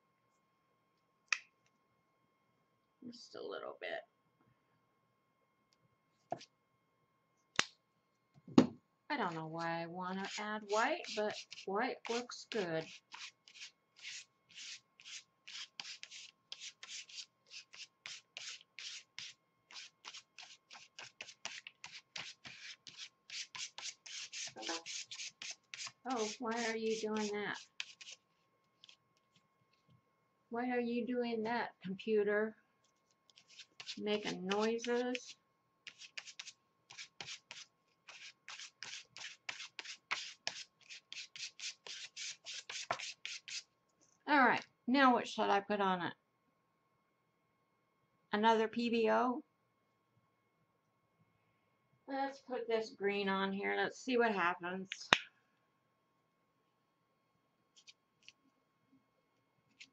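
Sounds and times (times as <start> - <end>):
foam applicator swishing on paper: 10.2 - 28.2.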